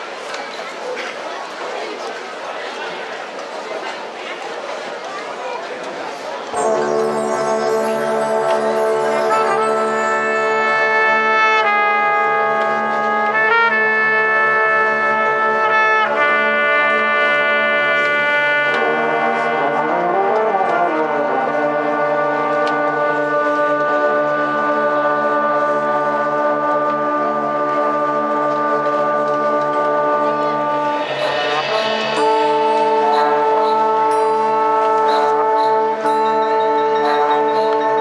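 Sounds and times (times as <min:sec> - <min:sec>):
brass section playing chords: 0:06.6 - 0:38.0.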